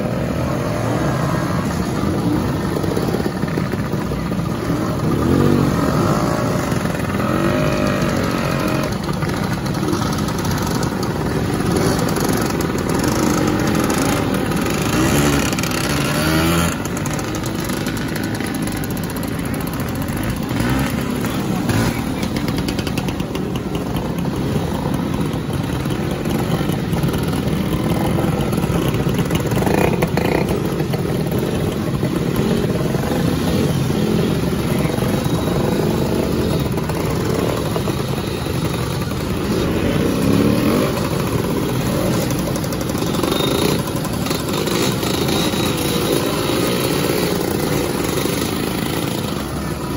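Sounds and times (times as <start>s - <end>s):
motorcycles riding past: 0.0s - 49.9s
scooters riding past: 0.0s - 49.9s.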